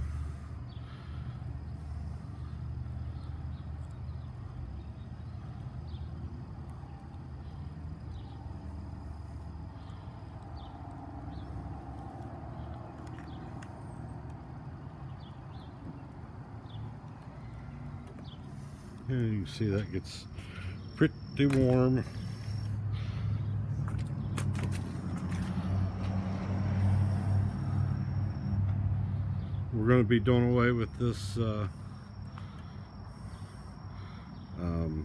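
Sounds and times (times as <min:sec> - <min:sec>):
low rumble of street traffic: 0:00.0 - 0:35.0.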